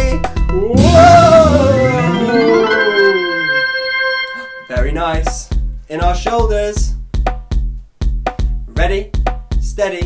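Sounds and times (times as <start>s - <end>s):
electronic organ music: 0.7s - 5.1s.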